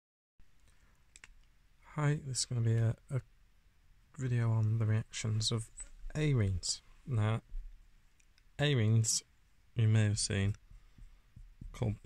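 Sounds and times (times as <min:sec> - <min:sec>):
faint clicks: 0:00.6 - 0:01.6
man's voice: 0:01.9 - 0:03.2, 0:04.2 - 0:07.5, 0:08.6 - 0:10.6, 0:11.8 - 0:12.0.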